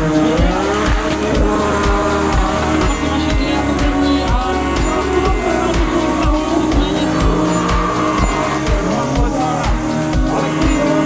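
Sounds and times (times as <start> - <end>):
background music with bass beat: 0.0 - 11.0
car engine revving: 0.0 - 11.0
tyres squealing: 0.0 - 11.0.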